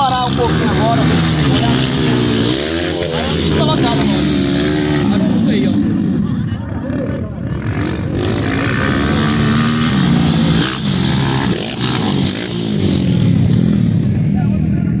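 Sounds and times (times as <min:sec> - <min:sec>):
dirt bike engines revving: 0:00.0 - 0:15.0.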